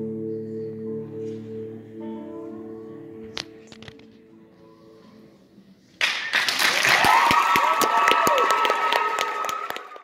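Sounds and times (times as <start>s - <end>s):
audience applause: 6.0s - 10.0s
audience cheering and whooping: 6.6s - 10.0s.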